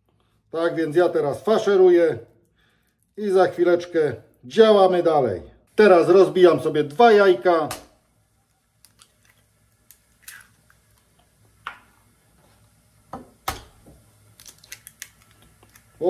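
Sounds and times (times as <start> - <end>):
eggshells crackling: 8.5 - 11.2, 14.2 - 16.0.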